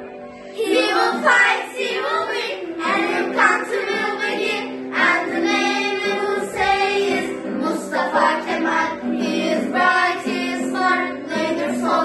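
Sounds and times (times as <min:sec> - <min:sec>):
children singing together: 0:00.6 - 0:12.0.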